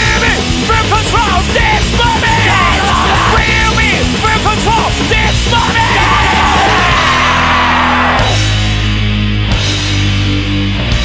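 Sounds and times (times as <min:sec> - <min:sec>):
shouted vocals: 0:00.0 - 0:08.4
distorted guitar bass and drums: 0:00.0 - 0:11.0.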